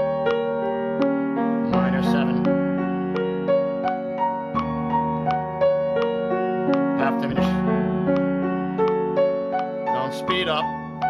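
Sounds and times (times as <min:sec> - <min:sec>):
piano arpeggios: 0:00.0 - 0:11.0
metronome ticking: 0:00.2 - 0:11.0.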